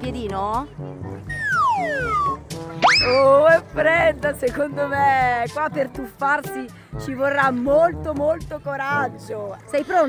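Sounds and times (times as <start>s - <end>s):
background music with steady beat: 0.0s - 10.0s
cartoon whistle glide: 1.3s - 3.3s.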